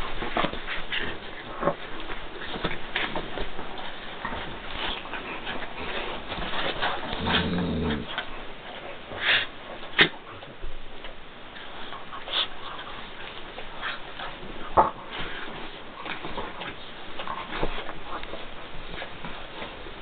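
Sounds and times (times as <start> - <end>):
dog growling: 6.8 - 8.3.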